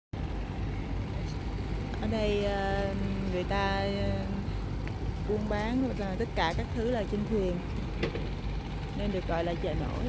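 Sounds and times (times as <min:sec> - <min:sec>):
boat engine rumbling: 0:00.2 - 0:10.0.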